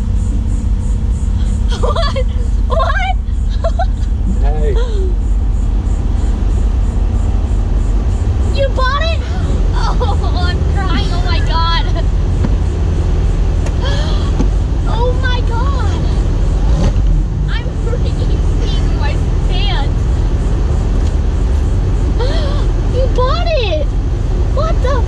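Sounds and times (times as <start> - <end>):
car engine idling: 0.0 - 25.0
excited wordless voices: 1.4 - 5.2, 8.5 - 12.4, 13.8 - 16.4, 17.5 - 20.3, 22.2 - 25.0.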